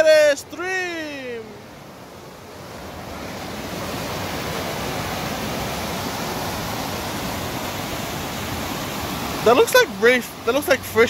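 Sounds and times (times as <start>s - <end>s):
stream rushing over boulders: 0.0s - 11.0s.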